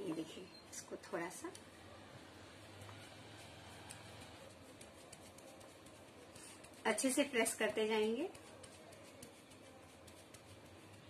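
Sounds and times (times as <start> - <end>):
wet sponge dabbing on glass: 1.4 - 11.0.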